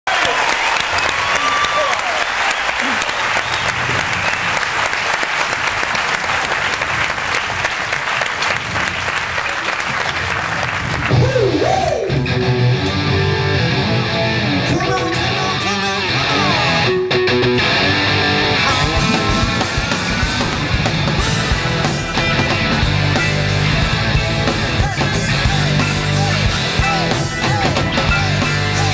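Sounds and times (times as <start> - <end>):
audience applauding and cheering: 0.0 - 13.9, 17.6 - 28.9
rock band playing: 10.8 - 28.9
electric guitar sliding notes: 11.1 - 28.9.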